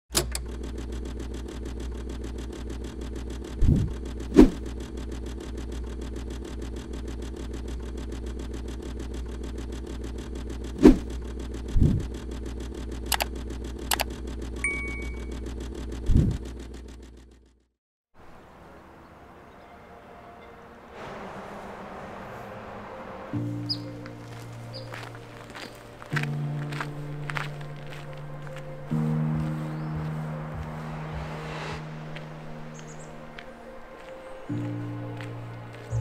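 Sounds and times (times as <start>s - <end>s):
mechanical hum: 0.2s - 17.3s
sharp clicks: 6.2s - 14.6s
bell-like ding: 14.6s - 15.4s.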